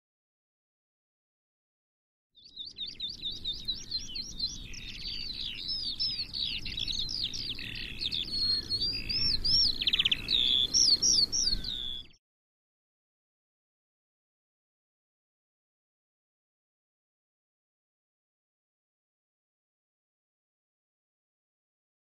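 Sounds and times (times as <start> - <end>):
songbird singing: 2.4 - 12.2.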